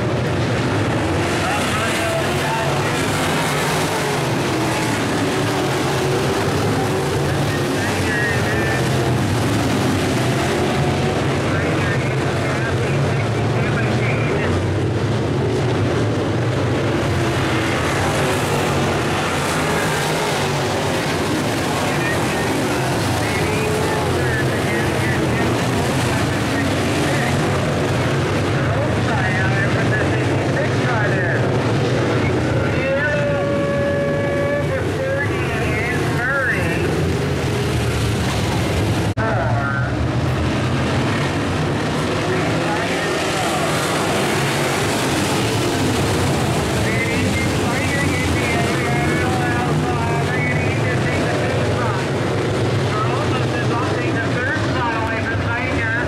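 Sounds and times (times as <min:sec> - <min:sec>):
race car engines droning: 0:00.0 - 0:56.0.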